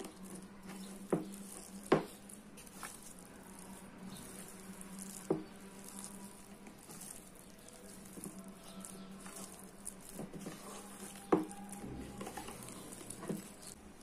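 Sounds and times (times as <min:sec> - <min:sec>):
dough squishing and patting: 0:00.0 - 0:14.0.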